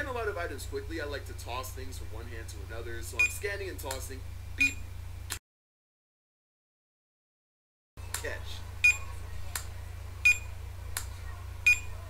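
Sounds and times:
checkout scanner beeps: 0:04.6 - 0:04.8, 0:08.8 - 0:09.1, 0:10.2 - 0:10.6, 0:11.6 - 0:12.0
sharp snaps: 0:08.1 - 0:08.3, 0:09.5 - 0:09.7, 0:10.9 - 0:11.2.

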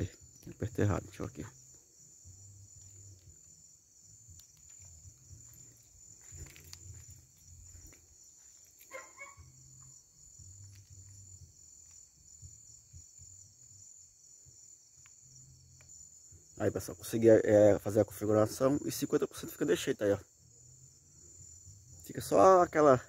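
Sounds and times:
night insects chirring: 0:00.0 - 0:23.0.

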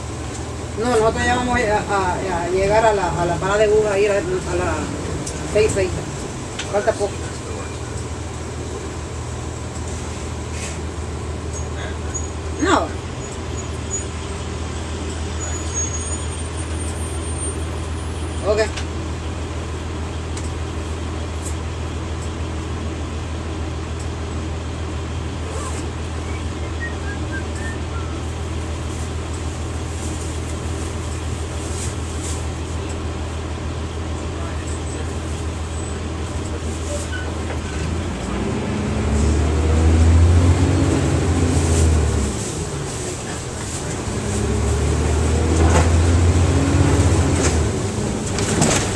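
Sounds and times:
bus diesel engine idling and revving: 0:00.0 - 0:48.9.

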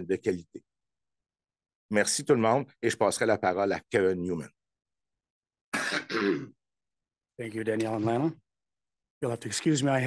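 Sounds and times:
man clearing his throat: 0:05.8 - 0:06.6.

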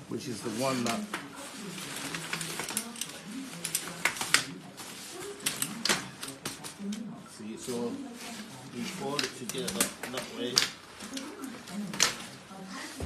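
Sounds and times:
travel cot frame clicking and rattling: 0:01.9 - 0:04.6, 0:08.9 - 0:12.5.

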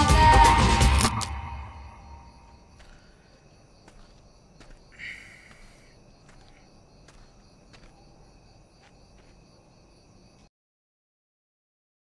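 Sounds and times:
crickets chirring: 0:00.2 - 0:10.5.

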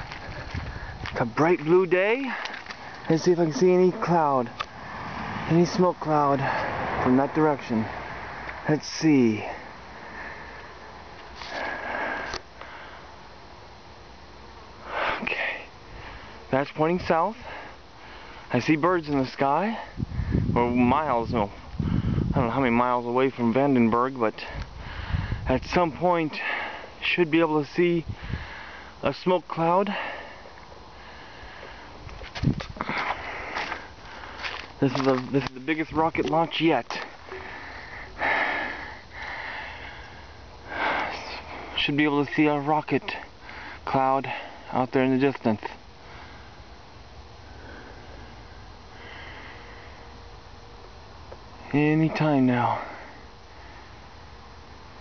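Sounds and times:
faint outdoor hiss: 0:00.0 - 0:55.0
person breathing: 0:06.4 - 0:07.0, 0:09.4 - 0:13.2, 0:14.8 - 0:16.5, 0:17.4 - 0:18.5, 0:21.6 - 0:22.3, 0:24.4 - 0:25.5, 0:28.1 - 0:29.0, 0:29.9 - 0:32.0, 0:32.8 - 0:34.7, 0:37.0 - 0:41.8, 0:43.0 - 0:44.7, 0:46.0 - 0:46.7, 0:47.4 - 0:50.2, 0:52.7 - 0:54.1.

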